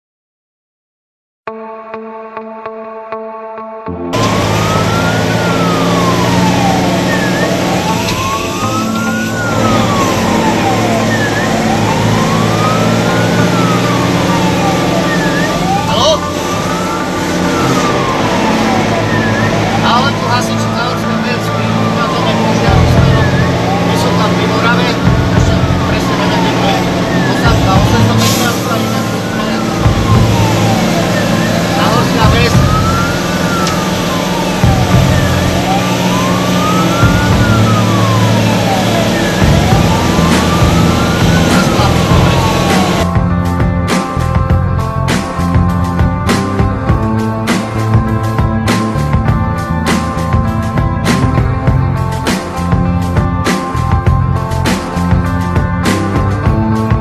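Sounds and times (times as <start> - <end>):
fire engine siren wailing: 3.9 - 57.0
truck engine running: 4.1 - 57.0.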